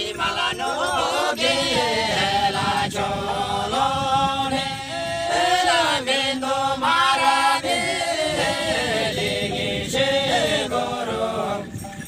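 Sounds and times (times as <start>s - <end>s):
group singing folk song: 0.0s - 12.0s.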